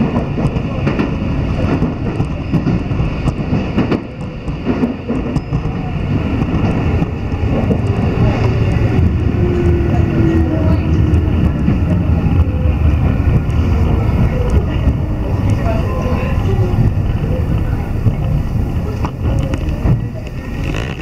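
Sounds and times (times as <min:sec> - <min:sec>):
train wheels rumbling: 0:00.0 - 0:21.0.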